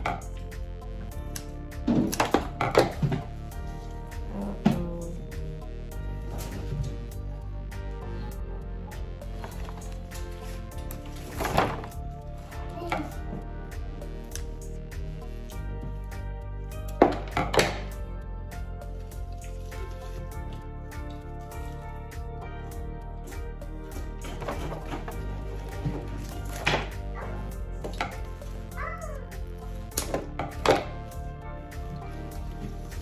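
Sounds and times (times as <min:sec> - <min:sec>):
background music: 0:00.0 - 0:33.0.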